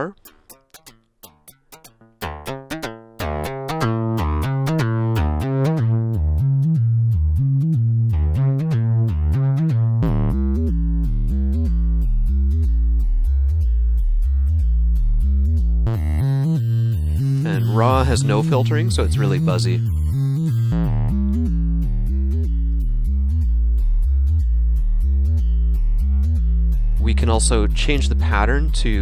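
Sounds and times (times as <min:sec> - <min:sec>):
plucked string synth melody: 0:00.0 - 0:29.0.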